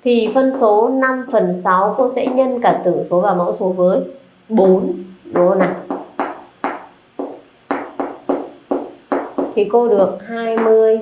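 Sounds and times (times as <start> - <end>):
chalk tapping and scraping on chalkboard: 5.4 - 11.0.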